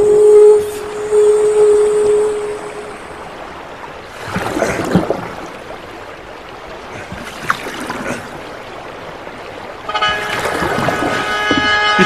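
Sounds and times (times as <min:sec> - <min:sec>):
water flowing and lapping: 0:00.0 - 0:12.0.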